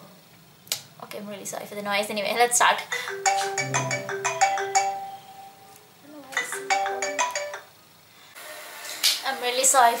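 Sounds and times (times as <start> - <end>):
mobile phone ringtone: 3.0 - 5.7, 6.4 - 7.7.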